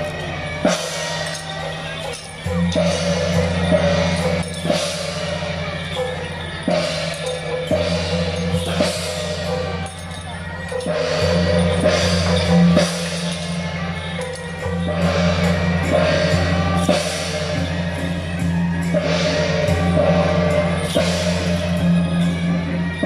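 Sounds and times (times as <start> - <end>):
drum strokes: 0.0 - 23.0
hand cymbals crashing: 0.0 - 23.0.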